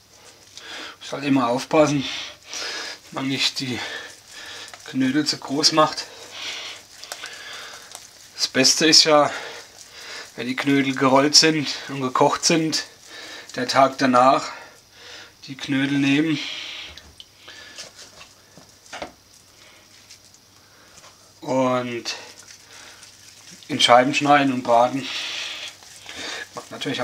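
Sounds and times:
hands handling dough: 0.0s - 14.5s, 17.1s - 27.0s
nose sniff: 6.0s - 8.4s, 9.3s - 10.4s, 25.0s - 26.7s.

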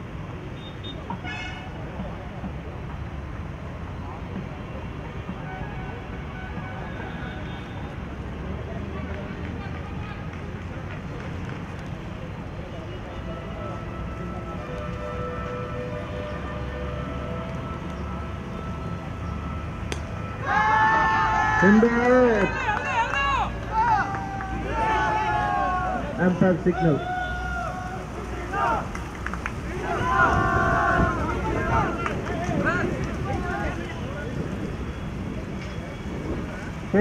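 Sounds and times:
outdoor rumble and hiss: 0.0s - 37.0s
faint distant voices: 0.8s - 37.0s
loud voices calling out: 20.3s - 34.7s.

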